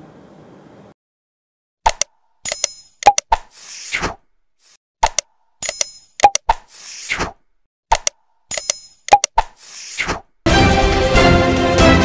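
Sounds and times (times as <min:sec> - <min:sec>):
mouse clicks: 0:05.0 - 0:06.6, 0:07.9 - 0:09.6.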